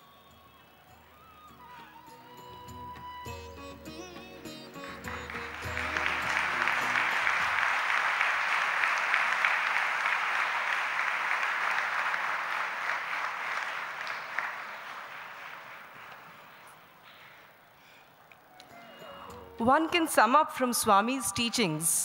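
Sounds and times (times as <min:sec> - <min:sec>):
instrumental music: 0:00.8 - 0:07.9
audience applauding: 0:04.4 - 0:17.5.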